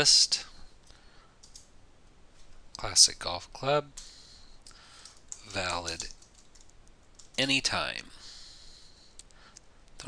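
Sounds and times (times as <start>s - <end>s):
keyboard typing clicks: 1.4s - 1.7s, 4.0s - 7.4s.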